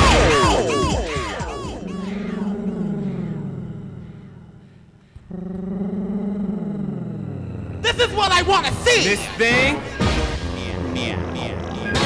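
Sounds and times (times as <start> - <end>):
held falling tone: 0.0 - 4.6
voice sample with swooping pitch: 0.0 - 4.7.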